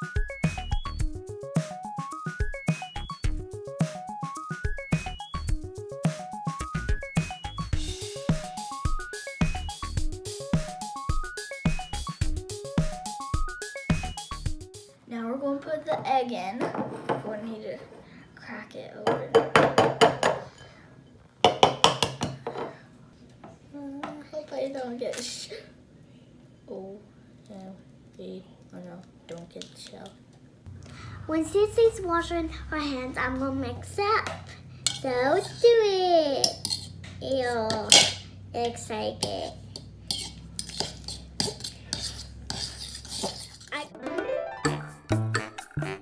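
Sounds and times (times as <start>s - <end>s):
metal spoon stirring in bowl: 34.8s - 35.2s, 36.4s - 37.0s, 39.2s - 43.8s.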